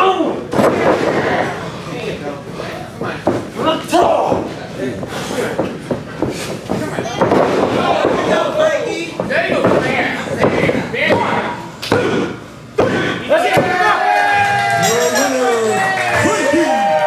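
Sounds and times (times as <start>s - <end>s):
voices shouting: 13.3s - 17.0s.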